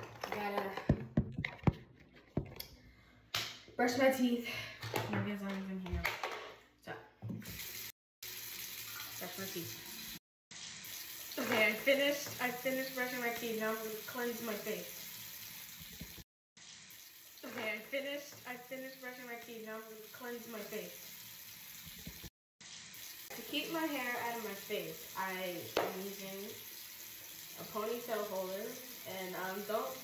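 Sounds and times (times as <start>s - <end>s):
tap water running into sink: 0.2s - 2.7s, 7.2s - 30.0s.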